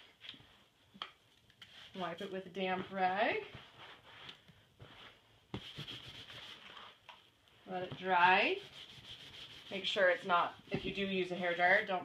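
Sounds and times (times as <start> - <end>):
cloth rag rubbing leather: 3.0 - 7.0, 8.0 - 10.6.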